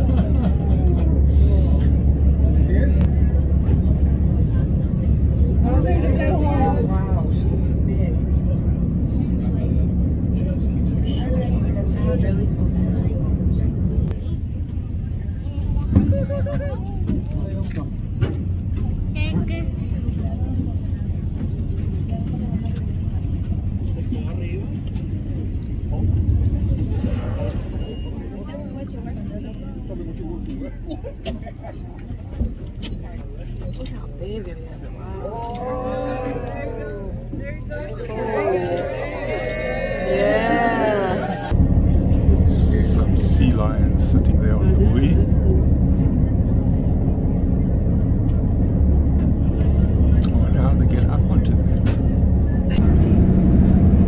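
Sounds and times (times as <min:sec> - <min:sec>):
people's voices: 0:00.0 - 0:53.9
boat engine droning: 0:00.0 - 0:54.0.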